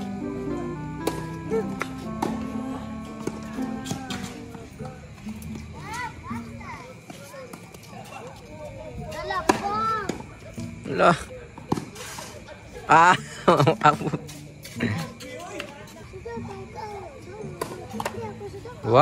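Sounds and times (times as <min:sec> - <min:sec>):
light background music: 0:00.0 - 0:07.0, 0:12.0 - 0:19.0
tennis ball struck by rackets: 0:00.9 - 0:04.7, 0:09.4 - 0:10.8, 0:11.6 - 0:12.0, 0:17.6 - 0:18.3
children calling out: 0:16.2 - 0:18.7.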